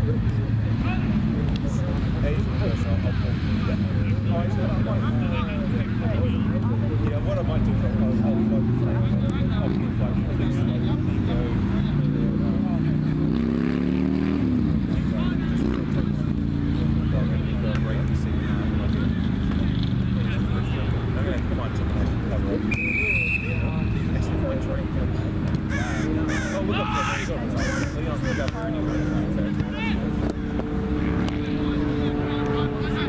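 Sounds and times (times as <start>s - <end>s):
road traffic hum: 0.0s - 33.0s
vehicle passing: 0.0s - 33.0s.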